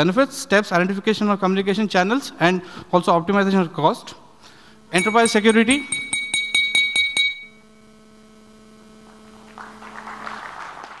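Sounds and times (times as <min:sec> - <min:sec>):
low electrical hum: 0:00.0 - 0:11.0
rapid high ringing: 0:04.9 - 0:08.1.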